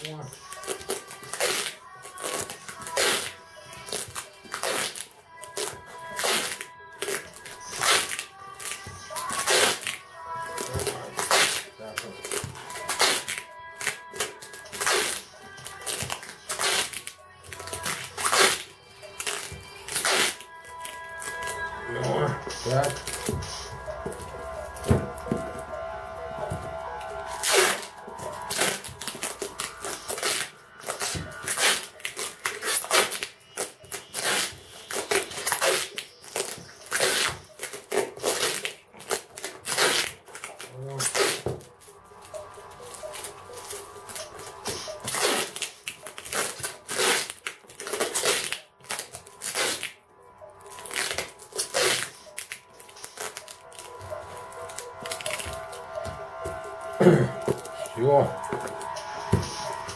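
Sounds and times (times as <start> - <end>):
packing tape ripping off roll: 0.0 - 21.7, 27.2 - 42.4, 43.0 - 50.0, 50.6 - 58.0
faint music: 0.0 - 59.9.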